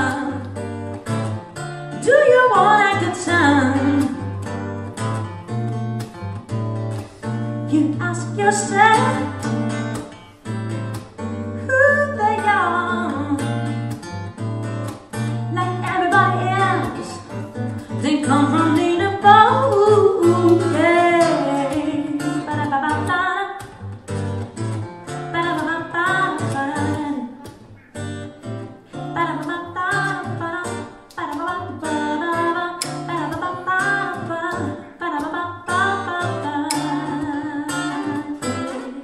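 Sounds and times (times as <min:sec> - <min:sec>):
acoustic guitar strummed: 0:00.0 - 0:39.0.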